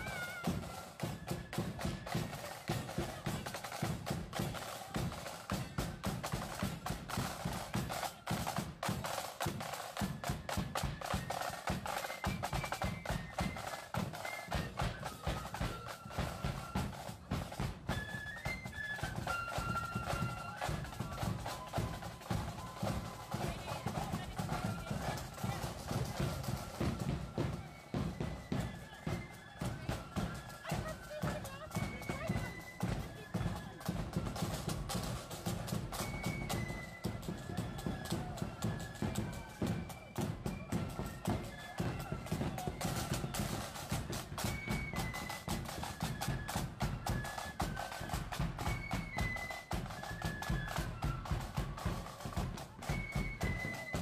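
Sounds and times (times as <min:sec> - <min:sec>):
flute melody: 0:00.0 - 0:54.0
snare and bass drums marching: 0:00.0 - 0:54.0.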